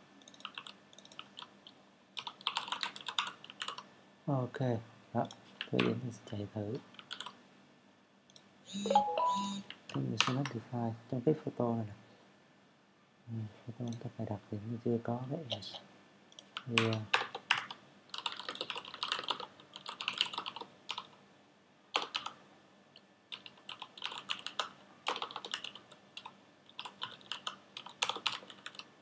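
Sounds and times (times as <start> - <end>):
typing on computer keyboard: 0.2 - 3.9, 7.0 - 7.4, 16.4 - 21.2, 22.0 - 22.4, 23.3 - 28.9.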